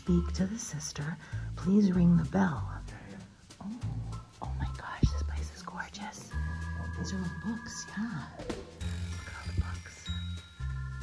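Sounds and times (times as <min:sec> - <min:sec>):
low rumble: 0:00.0 - 0:11.0
person whispering: 0:02.6 - 0:08.4, 0:09.1 - 0:10.4.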